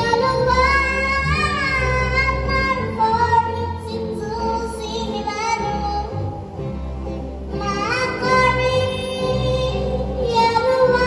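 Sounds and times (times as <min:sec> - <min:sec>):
girl singing into microphone: 0:00.0 - 0:06.5, 0:07.6 - 0:11.0.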